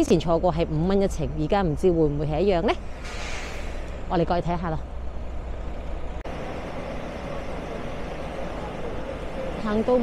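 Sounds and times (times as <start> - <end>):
bus engine idling: 0.0 - 10.0.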